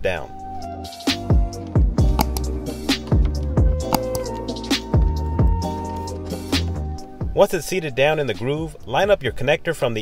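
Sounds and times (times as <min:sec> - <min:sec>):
background music with held notes: 0:00.0 - 0:09.4.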